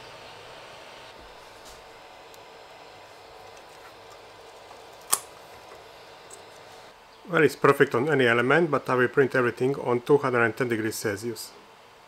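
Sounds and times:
printer fans whirring: 0.0 - 12.0.

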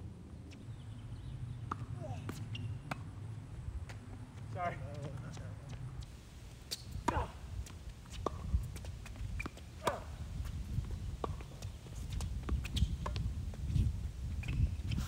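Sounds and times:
tennis balls struck and bouncing: 1.5 - 5.9, 6.7 - 7.4, 8.2 - 10.2, 11.2 - 11.7.

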